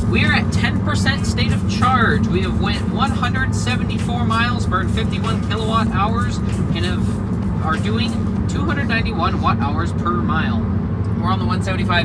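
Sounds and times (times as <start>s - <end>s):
man talking: 0.0s - 12.0s
tyre and road noise in car: 0.0s - 12.0s.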